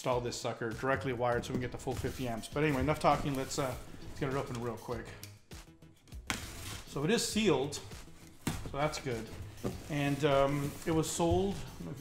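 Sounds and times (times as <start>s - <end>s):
knife cutting packing tape: 6.3s - 6.9s.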